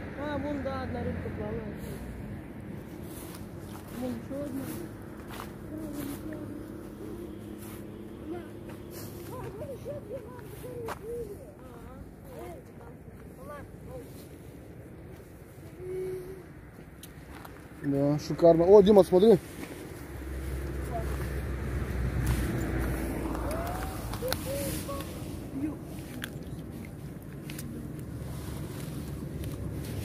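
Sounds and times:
faint steady hum: 0.0 - 17.9.

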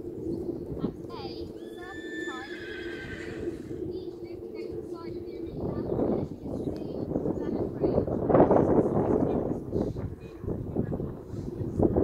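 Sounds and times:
horse whinnying: 1.6 - 3.8.

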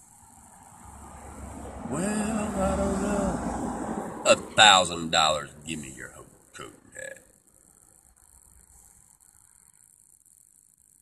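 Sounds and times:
man's voice: 1.9 - 3.5, 4.3 - 7.2
faint steady hiss: 4.3 - 11.0.

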